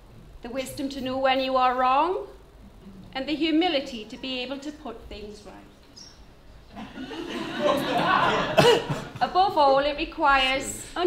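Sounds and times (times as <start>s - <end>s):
people laughing: 6.7s - 9.5s.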